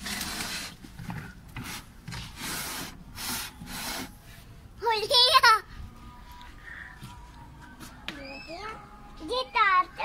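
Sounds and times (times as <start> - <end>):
glass pane scraping on wood: 0.0 - 4.1.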